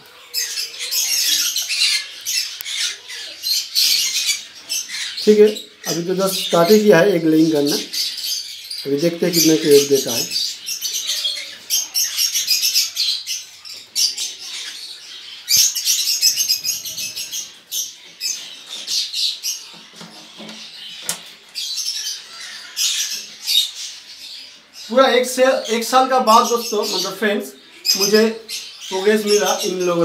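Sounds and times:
parrots chattering and squawking: 0.0s - 30.0s.

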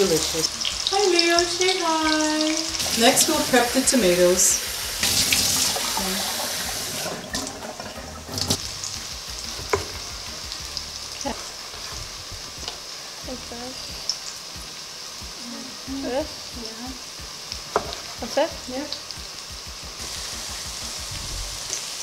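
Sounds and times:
tap water running into sink: 0.0s - 13.0s, 17.1s - 22.0s
onions sizzling in oil: 0.0s - 22.0s.

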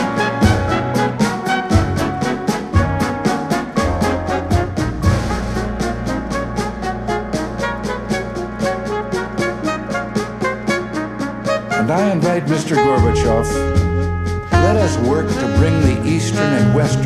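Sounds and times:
big band jazz: 0.0s - 17.0s
low held brass note: 1.9s - 17.0s.

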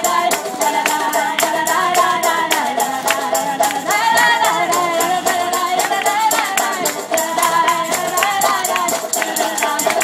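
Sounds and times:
acoustic folk-punk band playing: 0.0s - 10.0s
banjo: 0.0s - 10.0s
people singing: 0.0s - 10.0s
tambourine: 0.0s - 10.0s.

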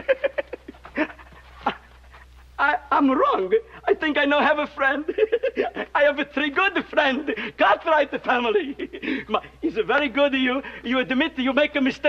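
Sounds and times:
man laughing: 0.0s - 2.0s, 4.7s - 9.5s.

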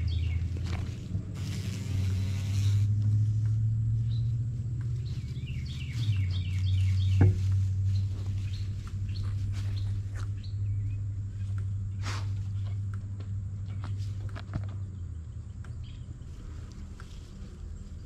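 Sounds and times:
songbird chirping: 0.0s - 1.0s, 3.9s - 18.0s
rustling through long grass: 0.0s - 12.7s, 16.1s - 18.0s
low hum: 0.0s - 18.0s
dogs snuffling: 4.9s - 10.5s, 11.3s - 13.0s.

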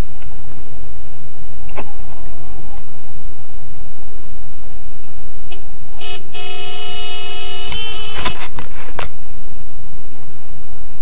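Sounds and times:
car horn honking: 6.0s - 8.6s.

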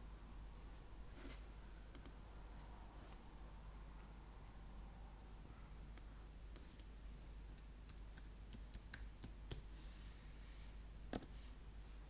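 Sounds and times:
mouse clicks: 1.9s - 2.2s
keyboard typing: 5.9s - 9.7s.

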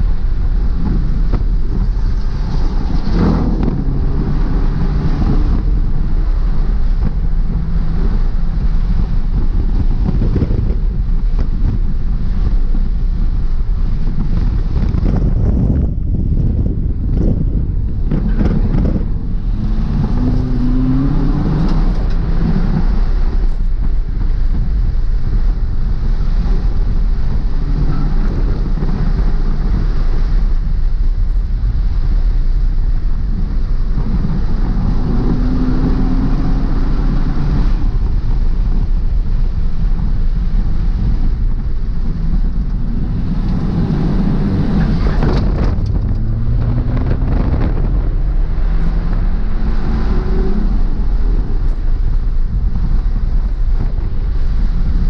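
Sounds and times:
car engine accelerating: 0.0s - 55.0s
road and wind noise: 0.0s - 55.0s.

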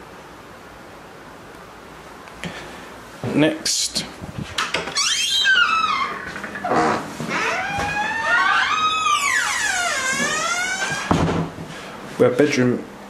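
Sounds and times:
door hinges creaking: 4.6s - 11.6s.

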